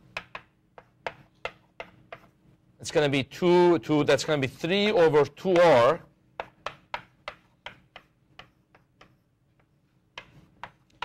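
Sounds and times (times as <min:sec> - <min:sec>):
chalk tapping on chalkboard: 0:00.0 - 0:02.4, 0:05.4 - 0:05.8, 0:06.4 - 0:11.0.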